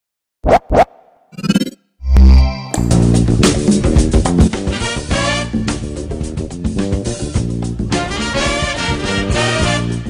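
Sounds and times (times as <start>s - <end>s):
record scratch sweeps: 0.4s - 2.6s.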